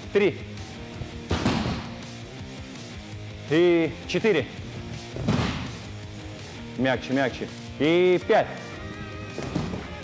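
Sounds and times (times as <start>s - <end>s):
people landing on a gym mat: 1.1s - 2.0s, 5.1s - 5.9s, 9.2s - 10.0s.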